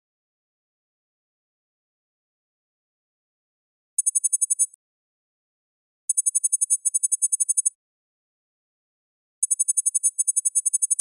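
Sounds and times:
short high-pitched typing beeps: 0:04.0 - 0:04.8, 0:06.1 - 0:07.8, 0:09.4 - 0:11.0.

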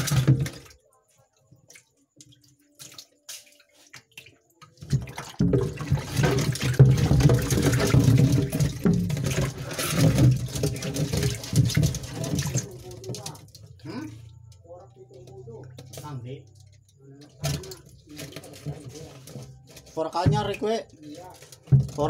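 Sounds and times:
water pouring and splashing: 0:00.0 - 0:14.5, 0:15.1 - 0:22.0.

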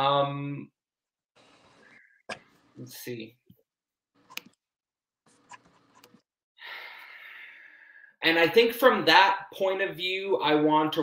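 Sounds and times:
man breathing in: 0:06.6 - 0:08.2.

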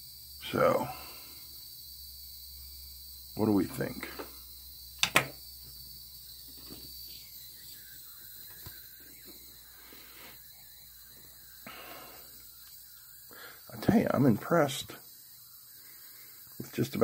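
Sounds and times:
faint high-pitched whine: 0:00.0 - 0:17.0.

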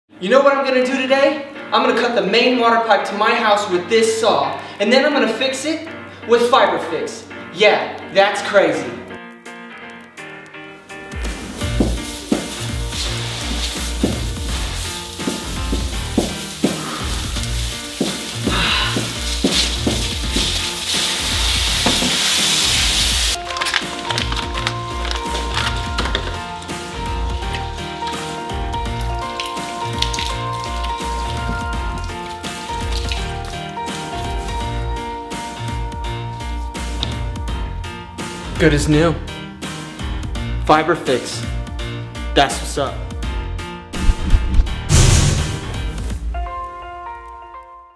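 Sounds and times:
background music with steady beat: 0:00.3 - 0:47.9
water spraying hiss: 0:11.3 - 0:23.4.

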